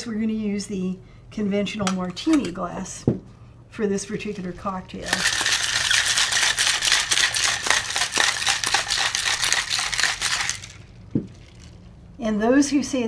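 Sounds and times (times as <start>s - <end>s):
ice rattling in cocktail shaker: 4.2s - 11.9s.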